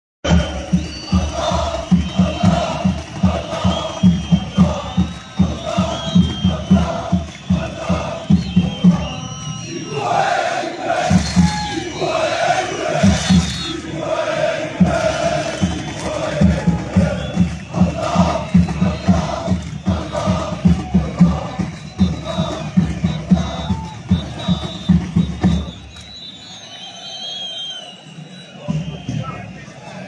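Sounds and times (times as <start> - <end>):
fast steady drum beat: 0.2 - 9.7, 10.8 - 26.0
crowd chanting: 0.2 - 30.0.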